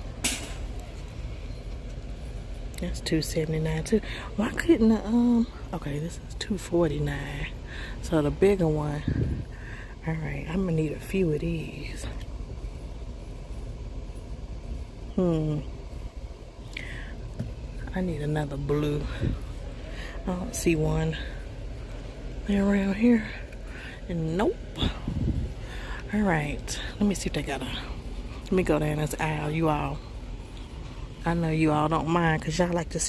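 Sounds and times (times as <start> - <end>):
low background hum: 0.0 - 33.0
store background rumble: 0.0 - 33.0.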